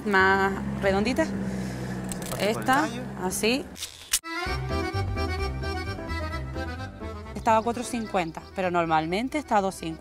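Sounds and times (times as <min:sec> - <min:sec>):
background music with chords and bass: 0:04.2 - 0:10.0.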